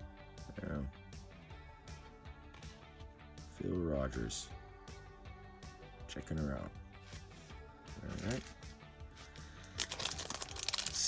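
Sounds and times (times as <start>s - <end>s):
foil wrapper crinkling and tearing: 9.6s - 11.0s.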